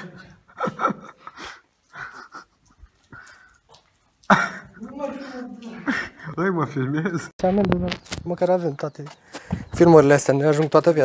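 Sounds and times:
quick breaths: 0:09.2 - 0:09.8.

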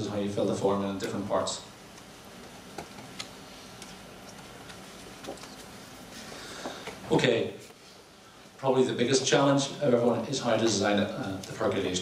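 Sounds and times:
low hum of hall: 0:00.0 - 0:12.0.

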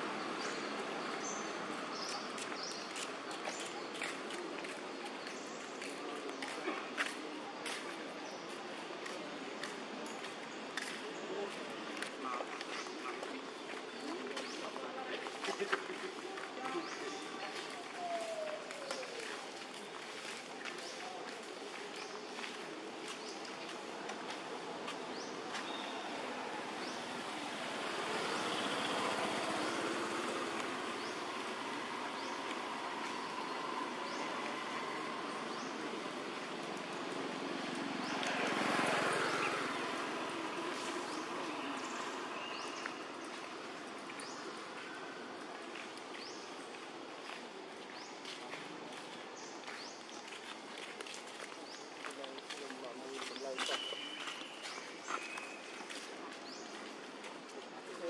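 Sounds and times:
faint unclear voices: 0:00.0 - 0:58.0.

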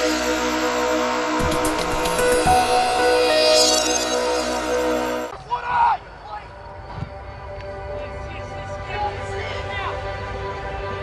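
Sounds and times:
intro music: 0:00.0 - 0:05.3.

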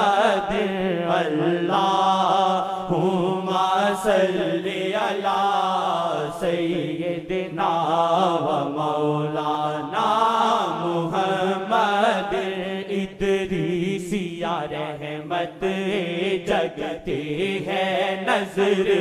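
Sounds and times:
person singing devotional chant: 0:00.0 - 0:19.0.

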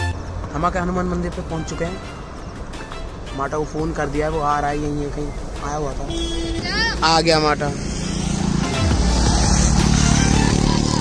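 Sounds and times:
motorcycle engine running: 0:07.7 - 0:11.0.

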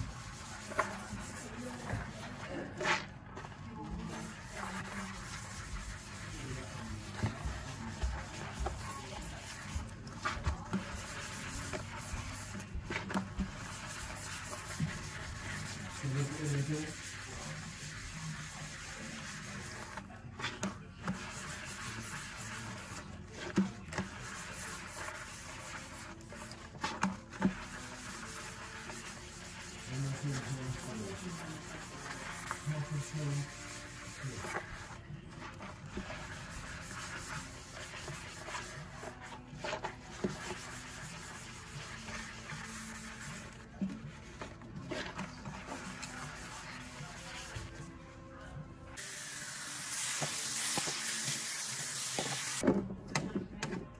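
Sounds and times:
sponge scrubbing steel sink: 0:00.0 - 0:48.2, 0:48.9 - 0:52.6.

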